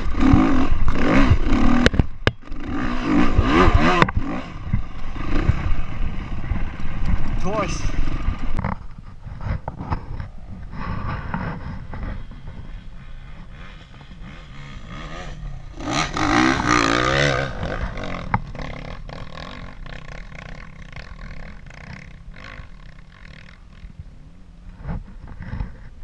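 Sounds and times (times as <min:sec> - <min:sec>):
dirt bike engine revving: 0:00.0 - 0:24.1.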